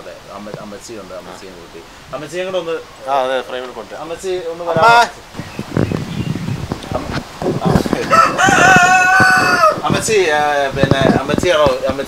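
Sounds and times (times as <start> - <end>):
rooster crowing: 8.0 - 9.8.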